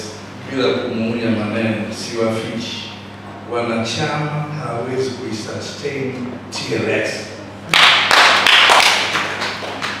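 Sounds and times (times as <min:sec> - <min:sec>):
audience applauding: 0:07.7 - 0:10.0.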